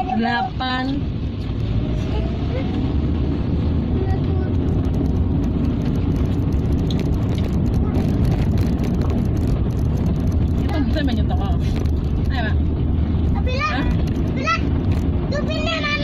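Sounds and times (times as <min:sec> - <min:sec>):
car engine and tyres rumbling: 0:00.0 - 0:16.0.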